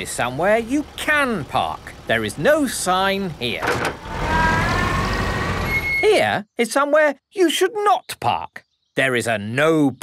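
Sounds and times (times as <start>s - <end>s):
cartoon car engine running: 0.0s - 6.0s.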